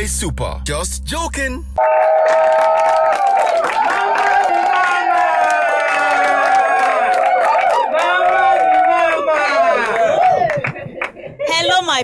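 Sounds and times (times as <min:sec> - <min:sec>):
people shouting: 0:01.8 - 0:10.6
audience clapping and cheering: 0:01.8 - 0:11.2.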